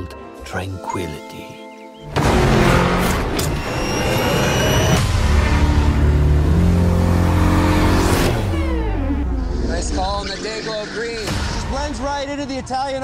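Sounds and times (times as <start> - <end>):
car engine revving and accelerating: 2.1 - 10.6.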